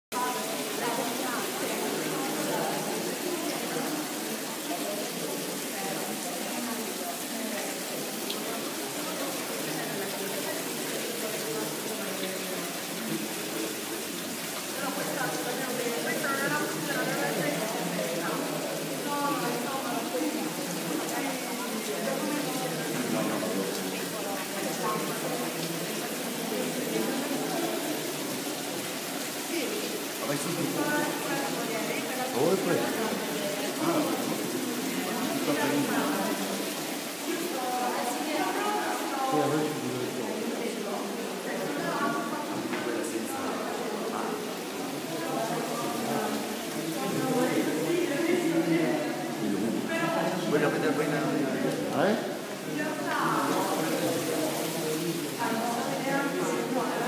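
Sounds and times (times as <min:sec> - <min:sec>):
people talking indistinctly: 0:00.1 - 0:57.0.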